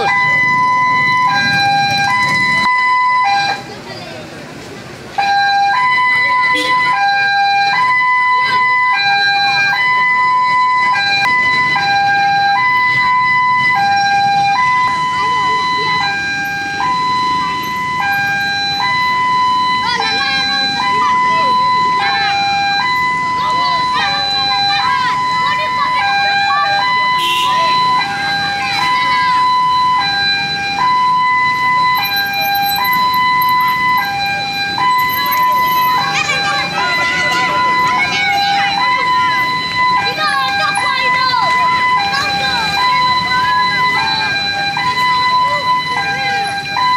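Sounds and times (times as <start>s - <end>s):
two-tone hi-lo siren: 0.0s - 3.7s, 5.2s - 46.9s
faint crowd voices: 0.0s - 46.9s.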